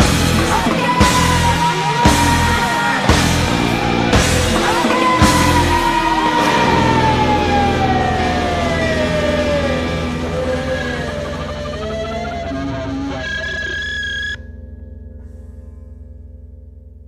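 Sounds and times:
alternative rock band playing: 0.0 - 14.4
low drone: 0.0 - 17.0.

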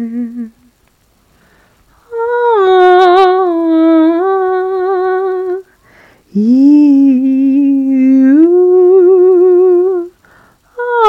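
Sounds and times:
person humming: 0.0 - 0.7, 2.0 - 5.7, 6.3 - 11.0.

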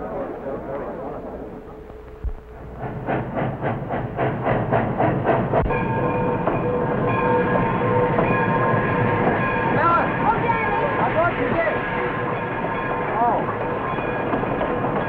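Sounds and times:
steam locomotive chuffing: 0.0 - 15.0.

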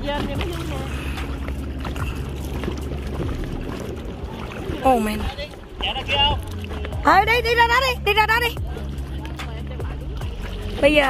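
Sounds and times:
choppy lake water: 0.0 - 11.0.

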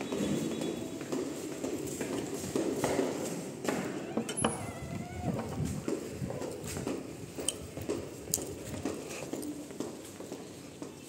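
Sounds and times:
footsteps on concrete floor: 0.0 - 11.0.

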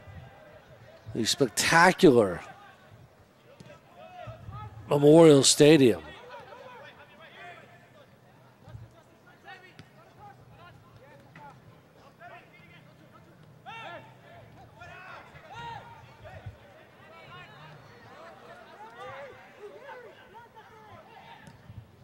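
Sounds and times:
distant shouts of players: 13.6 - 21.7.

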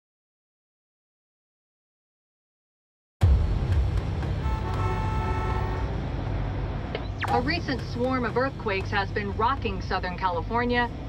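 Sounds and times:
idling vehicles rumble: 3.3 - 11.0.

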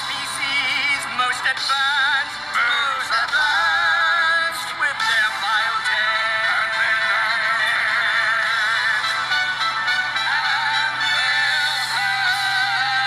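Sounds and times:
synthetic singing voice: 0.0 - 9.2
musical accompaniment: 0.0 - 13.0.

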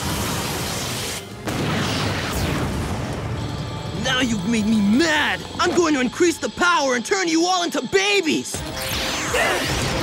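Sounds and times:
background music: 1.1 - 10.0.

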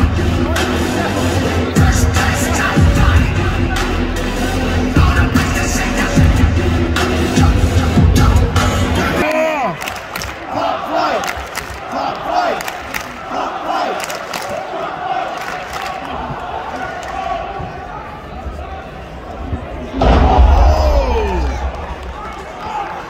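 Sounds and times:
arena crowd noise: 0.0 - 23.0
fans yelling and shouting: 0.0 - 23.0.

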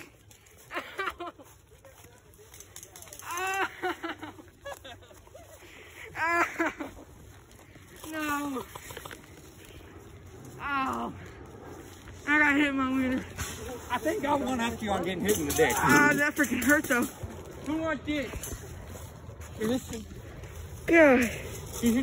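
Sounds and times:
footsteps crunching dry leaves: 0.0 - 22.0
voices calling out: 0.0 - 22.0.

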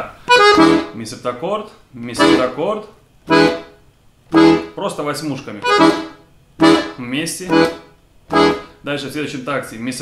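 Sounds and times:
accordion chords: 0.2 - 1.4, 2.0 - 9.0.

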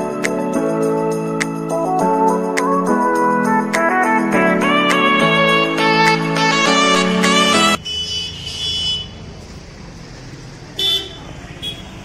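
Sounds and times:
vehicle horns honking: 7.3 - 9.2, 10.8 - 12.0
low traffic rumble: 7.3 - 12.0.

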